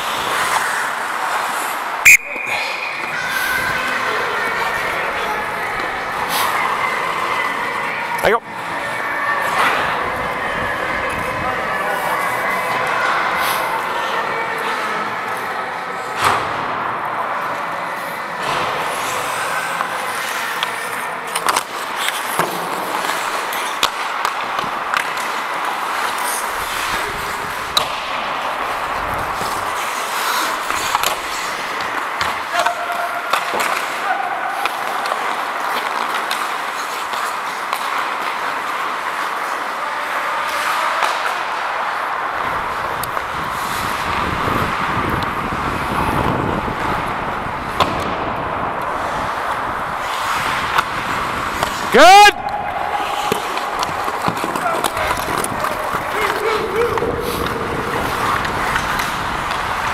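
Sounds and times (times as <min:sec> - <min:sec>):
skate blades scraping ice: 0:00.0 - 0:07.9, 0:17.4 - 0:59.9
sticks and puck clicking: 0:19.7 - 0:27.0, 0:29.0 - 0:34.0, 0:42.9 - 0:43.7, 0:48.8 - 0:59.9
wind on microphone: 0:42.4 - 0:51.6, 0:55.0 - 0:59.9.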